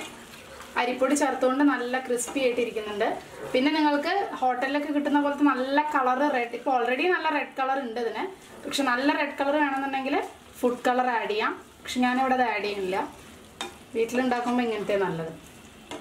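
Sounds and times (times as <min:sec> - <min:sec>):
food sizzling in a frying pan: 0:00.0 - 0:16.0
woman talking: 0:00.8 - 0:13.1, 0:13.9 - 0:15.4.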